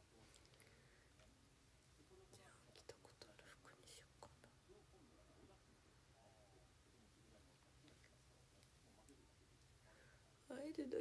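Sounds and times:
faint whispering: 1.9 - 11.0.

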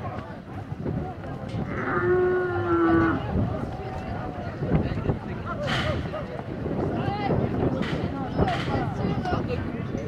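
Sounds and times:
crowd chatter and shouts: 0.0 - 10.0.

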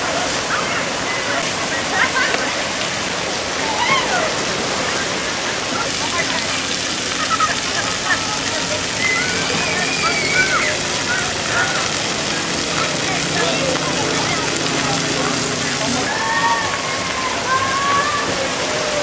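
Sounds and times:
water splashing from spray fountains: 0.0 - 19.0
children's voices and shouts: 3.5 - 19.0.

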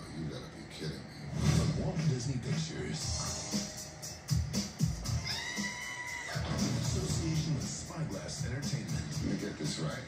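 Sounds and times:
trailer music with steady beat: 1.3 - 10.0.

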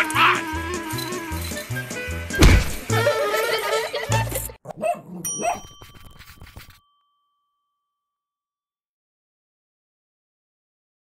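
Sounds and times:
background music: 0.0 - 4.6
small dog yapping: 4.7 - 5.7
bell-like ding: 5.2 - 8.4.

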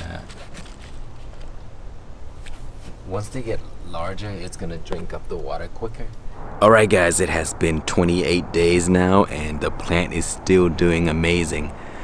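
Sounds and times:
low rumble: 6.2 - 11.1.

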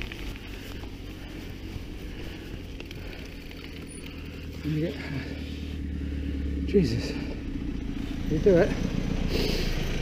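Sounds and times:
bike tyres rumbling: 0.0 - 10.0.

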